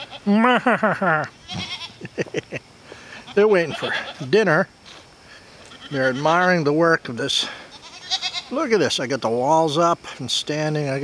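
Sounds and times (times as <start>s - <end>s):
goat bleating: 0.0s - 0.5s, 1.3s - 2.1s, 3.2s - 5.0s, 5.6s - 6.5s, 7.4s - 8.6s.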